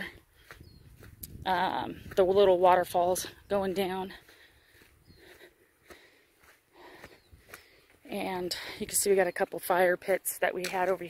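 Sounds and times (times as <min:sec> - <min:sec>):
soft breaths: 0:04.1 - 0:08.9.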